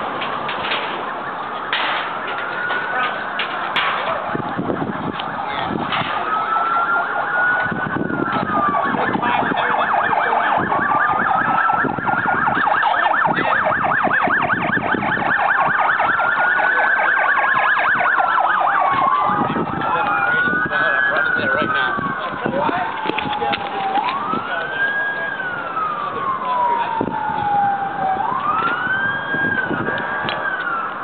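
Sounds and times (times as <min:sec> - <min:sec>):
police sirens wailing: 0:00.0 - 0:31.0
fast siren yelp: 0:00.9 - 0:31.0.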